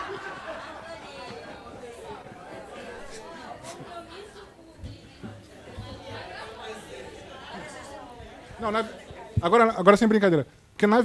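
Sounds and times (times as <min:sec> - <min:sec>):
faint chatter: 0:00.0 - 0:10.0.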